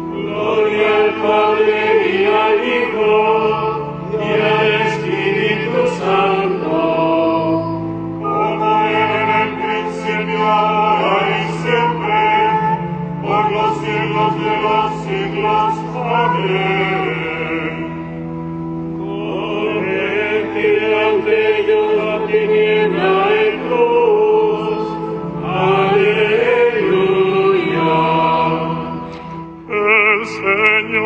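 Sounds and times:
person singing chant: 0:29.7 - 0:31.0.

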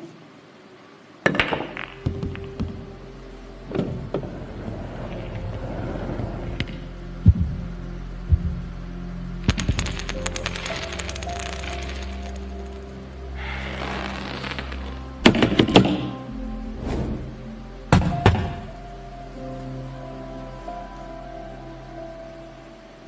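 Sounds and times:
balls colliding knocks and clicks: 0:01.3 - 0:02.9, 0:09.5 - 0:12.8
sustained soundtrack music: 0:01.3 - 0:23.0.

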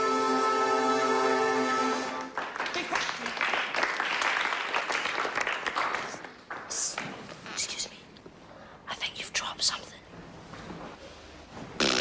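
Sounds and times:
whispering voices: 0:06.1 - 0:10.1.

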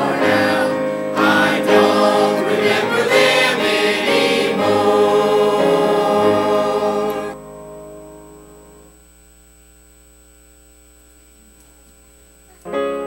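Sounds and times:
church choir singing: 0:00.0 - 0:08.1
held instrumental chord: 0:00.0 - 0:08.9.

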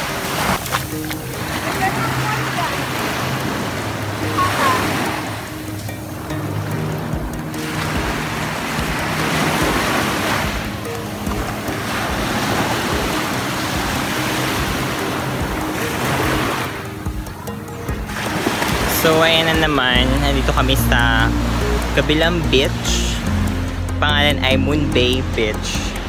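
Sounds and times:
music of held low notes: 0:00.0 - 0:26.0
small waves washing onto beach: 0:00.0 - 0:26.0.

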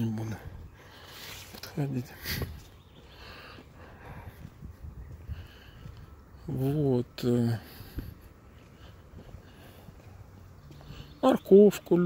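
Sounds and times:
footsteps on asphalt: 0:00.0 - 0:12.0.

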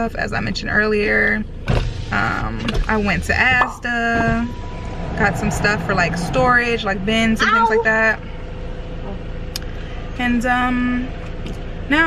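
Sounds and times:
car cabin low rumble: 0:00.0 - 0:12.0.

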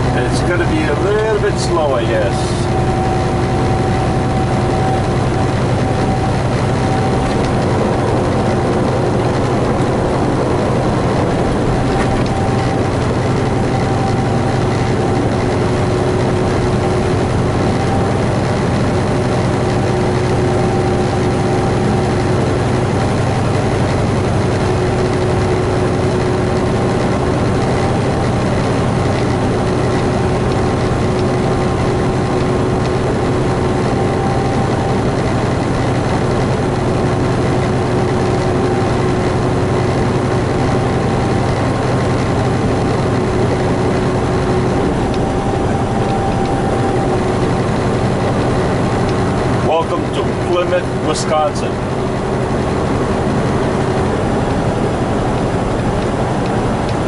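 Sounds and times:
diesel truck engine drone: 0:00.0 - 0:57.0.

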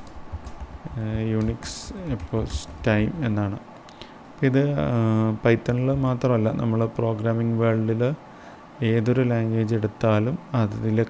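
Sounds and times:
man talking: 0:00.9 - 0:03.6, 0:04.4 - 0:08.2, 0:08.8 - 0:11.0.

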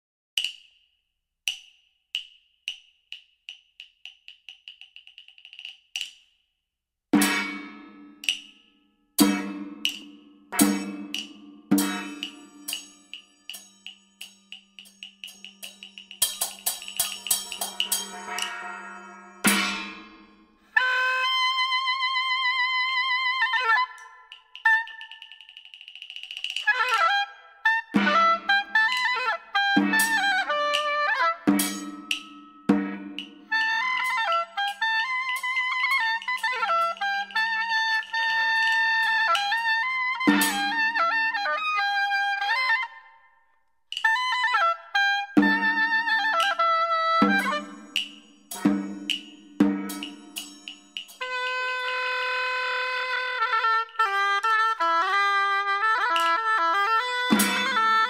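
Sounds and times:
ringing percussion strikes: 0:07.2 - 0:20.6, 0:31.5 - 0:33.6, 0:47.2 - 0:51.4.

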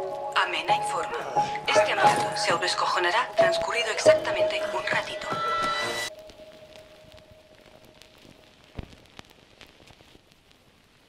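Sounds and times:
faint crackle and hiss: 0:00.0 - 0:11.0.

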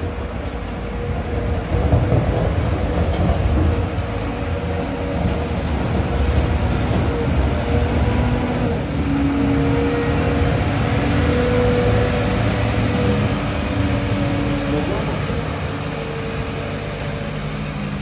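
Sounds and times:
diesel engine rumbling under load: 0:00.0 - 0:18.0.

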